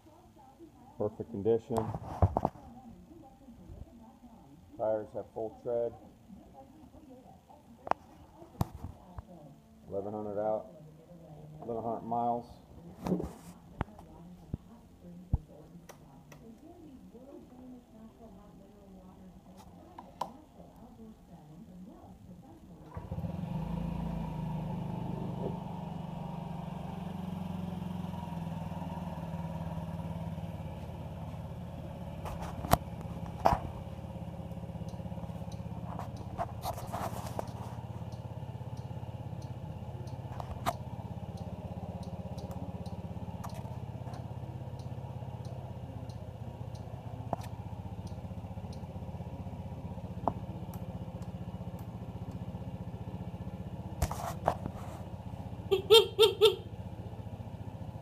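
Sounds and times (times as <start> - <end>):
scooter engine starting and idling: 22.7 - 58.0
sharp clicks: 37.4 - 48.9.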